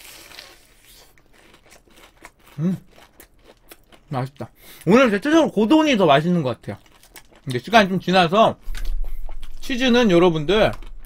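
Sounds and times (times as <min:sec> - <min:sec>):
crunching of fried crust: 0:00.0 - 0:09.8
chewing with small clicks: 0:01.1 - 0:04.9, 0:06.7 - 0:07.7.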